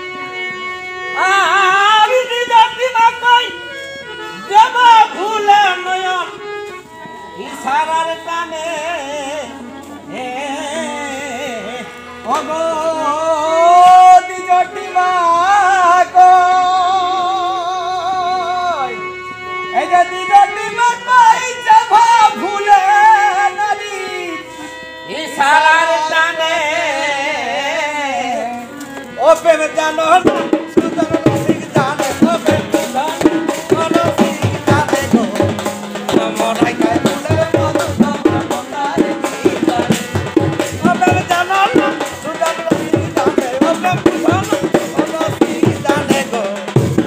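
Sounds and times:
harmonium chord: 0.0 - 47.0
man singing long ornamented notes: 0.0 - 47.0.

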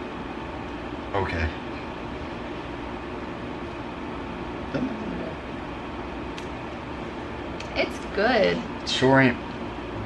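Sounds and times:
room noise hum: 0.0 - 10.0.

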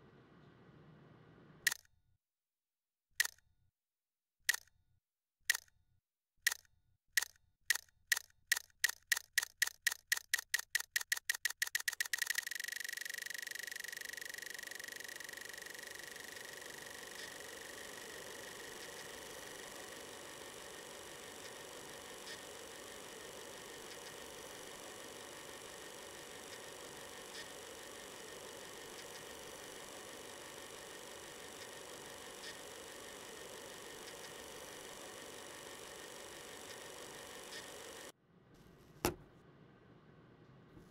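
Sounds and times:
film transport mechanism running: 7.2 - 38.2.

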